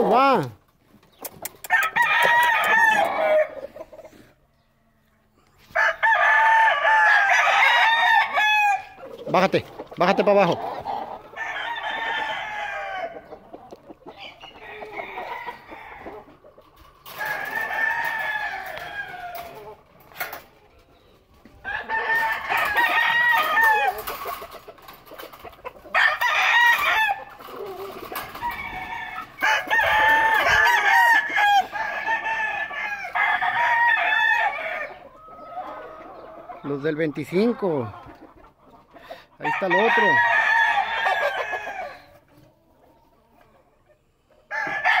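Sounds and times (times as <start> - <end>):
roosters crowing: 1.5 - 38.1, 39.0 - 43.7, 44.3 - 45.0.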